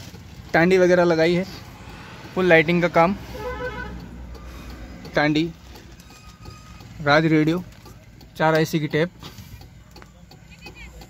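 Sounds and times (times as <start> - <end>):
faint vehicle horn toot: 3.3 - 4.1.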